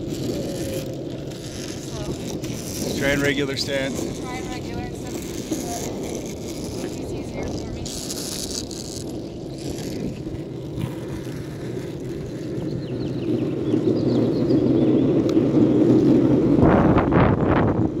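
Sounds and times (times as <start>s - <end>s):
longboard wheels rolling on asphalt: 0.0s - 18.0s.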